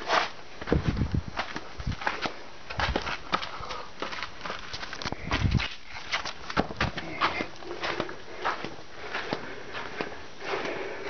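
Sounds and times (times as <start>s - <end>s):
footsteps on gritty ground: 0.0s - 11.0s.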